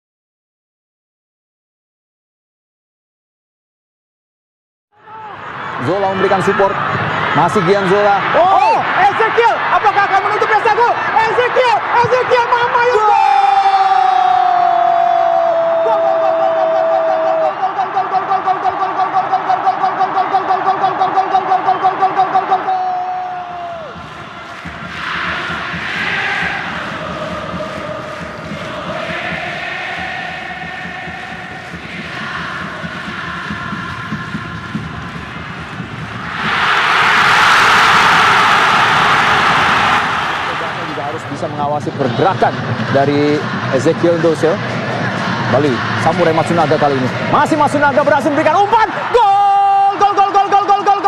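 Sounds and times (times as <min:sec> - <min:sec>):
stadium crowd noise: 0:04.9 - 0:51.0
crowd chanting: 0:23.8 - 0:41.5
commentator shouting: 0:47.4 - 0:51.0.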